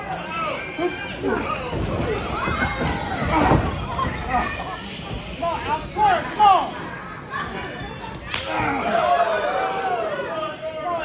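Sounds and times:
crowded room noise: 0.0 - 11.0
people shouting: 8.3 - 10.5.

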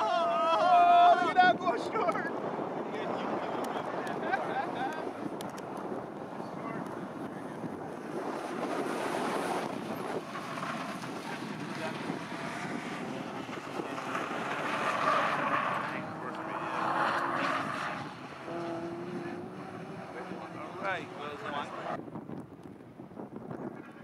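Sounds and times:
wind noise on microphone: 0.0 - 24.0
race car engines at speed: 0.7 - 22.0.

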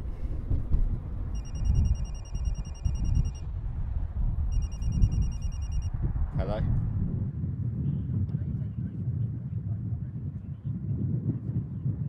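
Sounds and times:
mobile phone ringing: 1.4 - 3.4, 4.5 - 5.9.

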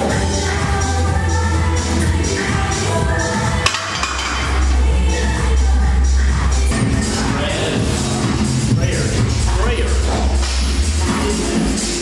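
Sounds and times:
electronic music with bass beat: 0.0 - 12.0.

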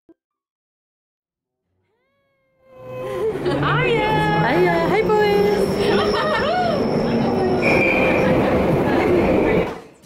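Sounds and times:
voices calling out: 2.8 - 9.7
train carriage rumbling: 3.1 - 10.0
high wheel squeal: 3.7 - 9.6.

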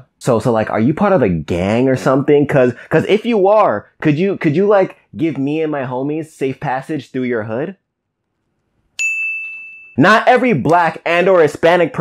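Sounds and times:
high bell-like ding: 9.0 - 10.1.

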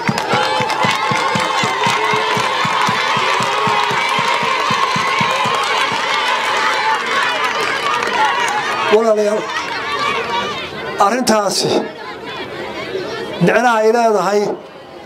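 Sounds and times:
rhythmic drum thumps: 0.0 - 6.2
crowd chanting and cheering: 0.0 - 15.0.

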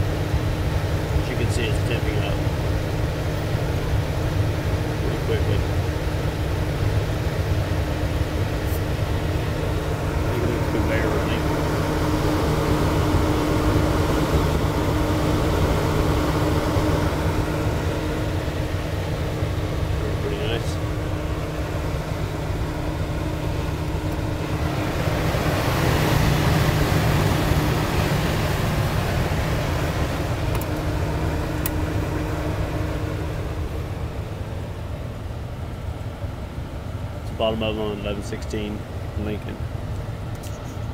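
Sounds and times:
steady tone: 0.0 - 36.6
oven blower fan hum and rush: 0.0 - 40.9.

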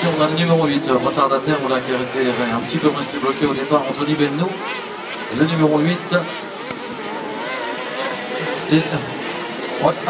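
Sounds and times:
kart engines revving: 0.0 - 10.0.

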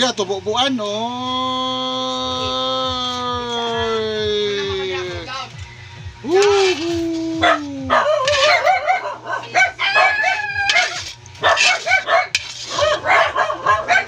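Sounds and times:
rooster crowing: 6.4 - 14.0
wavering chicken calls: 7.4 - 11.1.

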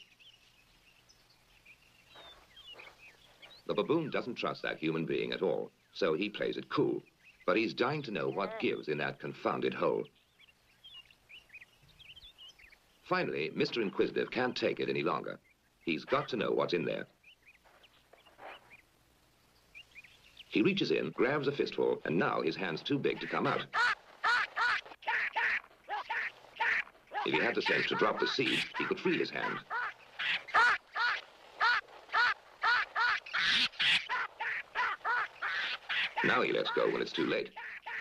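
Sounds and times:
faint bird chirps: 0.0 - 22.4
baboon screeching: 23.2 - 38.0.

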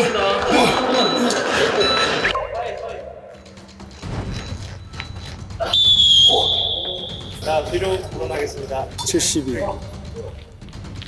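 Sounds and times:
referee's whistle long blast: 5.6 - 7.4.

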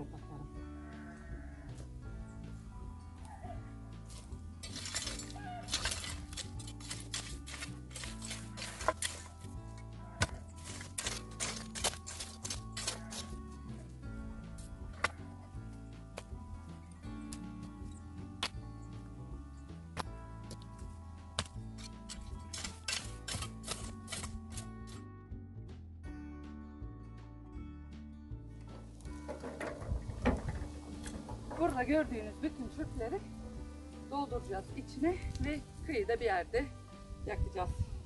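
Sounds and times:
background music: 0.0 - 38.0
shovel scraping stony soil: 4.1 - 13.9, 21.4 - 25.1
stones clinking and knocking: 4.6 - 9.4.

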